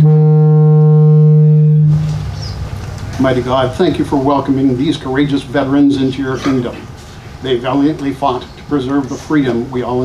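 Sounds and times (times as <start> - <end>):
steady horn-like tone: 0.0 - 2.7, 5.6 - 6.6.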